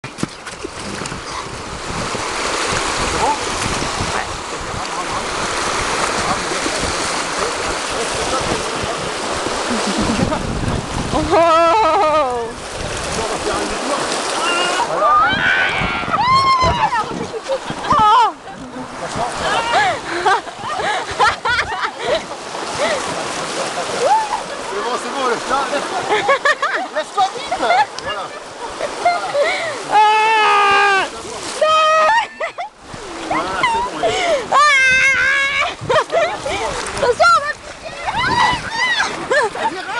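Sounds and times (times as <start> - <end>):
whitewater rushing: 0.0 - 39.9.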